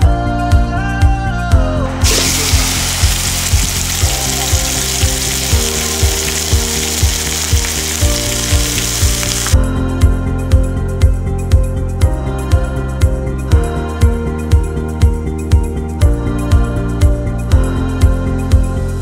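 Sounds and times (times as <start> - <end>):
background music with beat: 0.0 - 19.0
meat sizzling in hot oil: 2.0 - 9.6.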